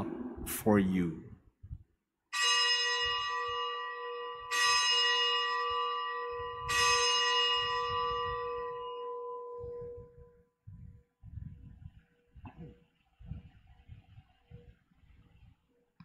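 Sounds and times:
bell ringing: 2.4s - 10.1s.

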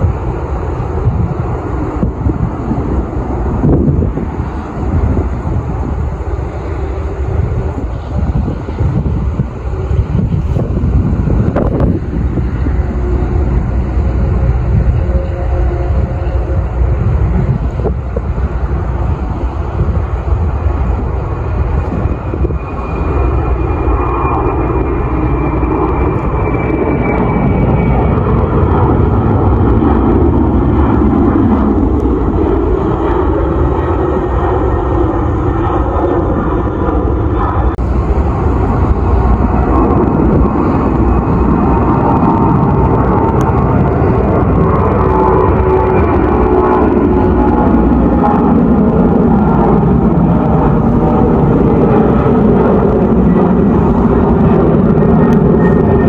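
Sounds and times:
jet engines rumbling at takeoff: 0.0s - 56.0s.

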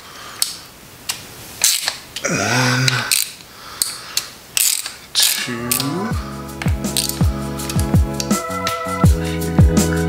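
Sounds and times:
ratchet wrench clicking: 3.1s - 5.9s, 6.6s - 7.8s.

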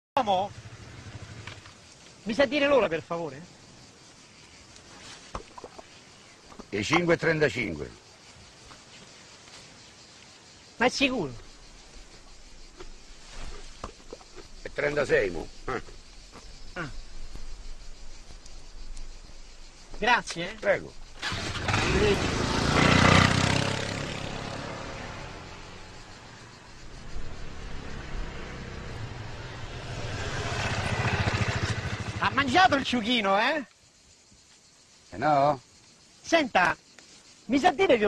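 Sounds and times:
faint outdoor hiss: 0.2s - 38.0s
motor scooter engine running: 21.3s - 24.8s, 29.8s - 32.5s.

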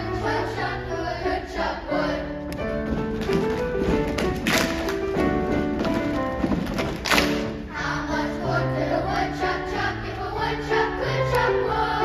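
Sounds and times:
grand piano playing: 0.0s - 12.0s
sharp percussive taps: 2.5s - 7.6s.

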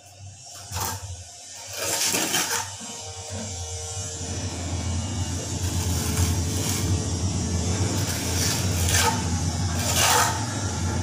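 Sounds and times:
tool scraping ceramic tile: 0.5s - 3.5s, 5.5s - 7.0s, 7.9s - 10.6s.

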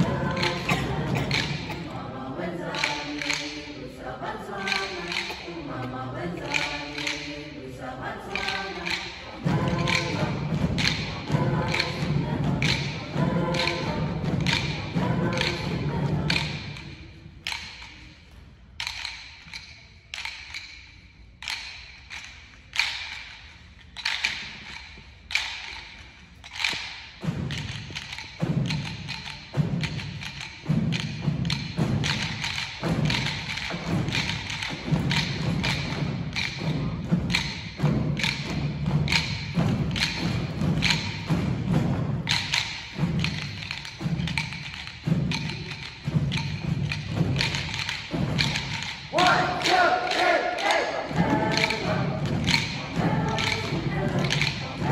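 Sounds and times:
rhythm sticks clicking: 0.0s - 3.8s, 4.5s - 7.5s, 8.2s - 54.9s
choir singing: 0.0s - 17.6s, 46.1s - 54.9s.

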